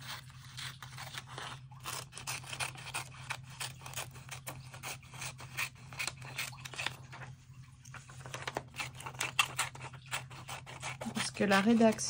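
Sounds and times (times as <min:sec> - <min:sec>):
scissors cutting paper: 0:00.0 - 0:07.3, 0:07.9 - 0:12.0.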